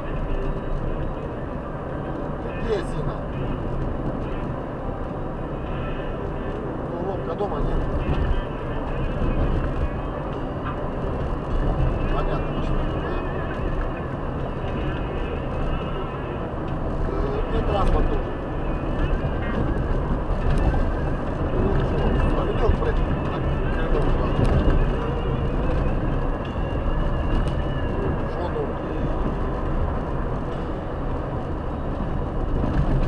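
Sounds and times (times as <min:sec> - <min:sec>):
voices: 0:00.0 - 0:29.7
car engine and road rumble: 0:00.0 - 0:33.0.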